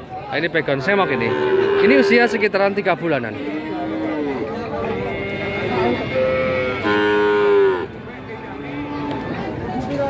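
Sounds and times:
calf mooing: 1.0 - 2.4, 3.3 - 7.9.

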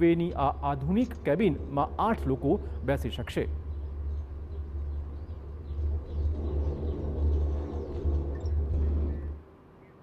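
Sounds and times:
ropeway cabin low rumble: 0.0 - 9.6.

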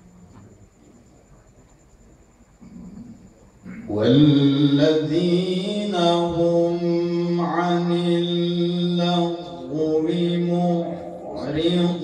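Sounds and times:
man reciting melodically: 3.7 - 12.0.

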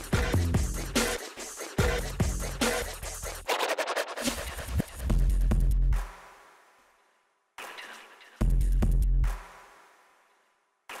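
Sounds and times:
electronic dj mix: 0.0 - 6.9.

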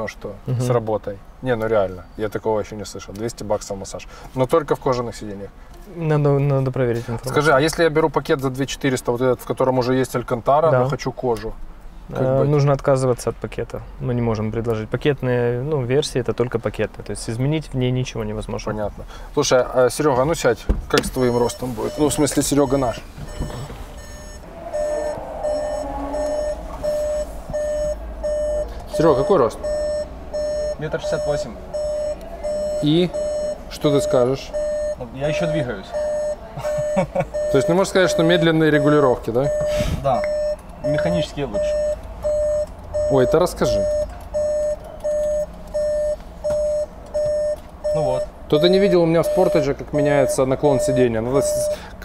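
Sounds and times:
car warning chime beeping: 21.0 - 52.0.

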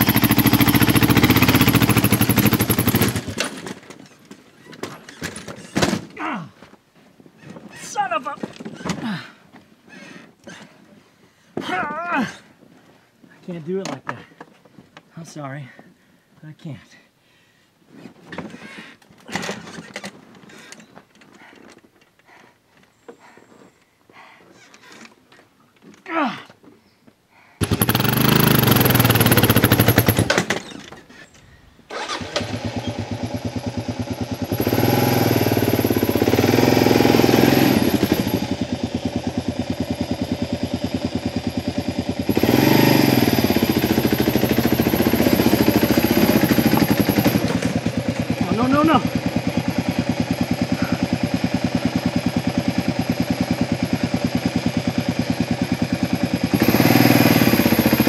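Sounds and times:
motorcycle engine revving: 0.0 - 3.8, 27.6 - 30.7, 31.9 - 58.0
scuffs and knocks of handled bike: 2.2 - 10.8, 11.5 - 16.0, 17.9 - 26.8, 45.4 - 52.4.

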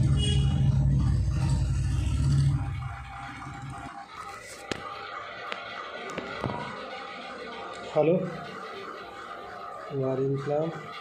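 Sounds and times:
low rumbling hum: 0.0 - 4.3.

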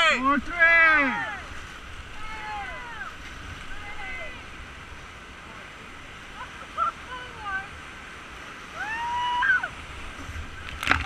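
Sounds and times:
people shouting: 0.0 - 1.5, 2.2 - 3.2
whitewater rapids rushing: 0.0 - 11.0.

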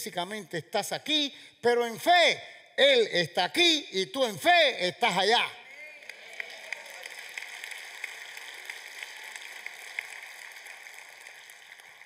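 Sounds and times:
congregation applauding softly: 5.9 - 12.0.

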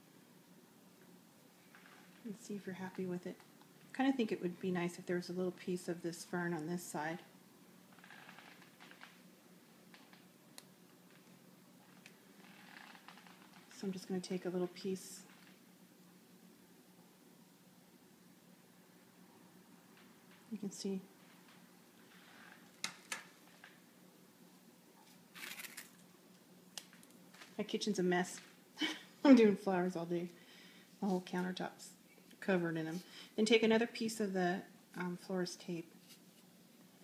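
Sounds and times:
faint low hum: 0.0 - 37.0
flower stems rustling: 25.0 - 26.1.

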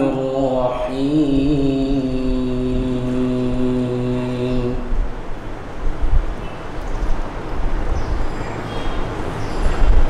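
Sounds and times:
man chanting recitation: 0.0 - 5.2.

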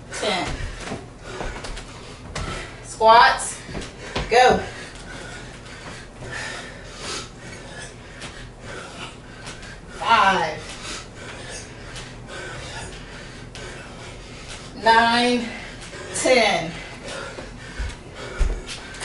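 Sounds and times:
heavy uneven breathing: 0.0 - 19.0.

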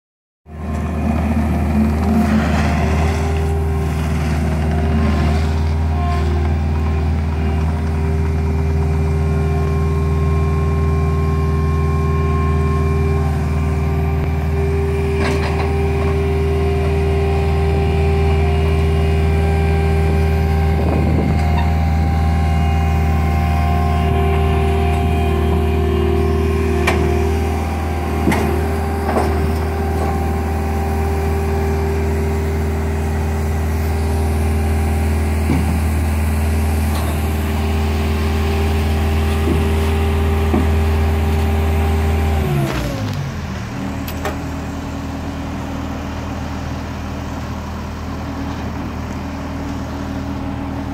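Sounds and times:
diesel engine running: 0.4 - 50.9.

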